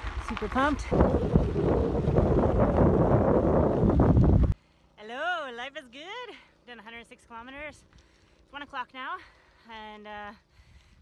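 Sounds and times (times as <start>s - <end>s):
tyres on loose gravel: 0.0s - 4.5s
wind buffeting microphone: 0.0s - 4.6s.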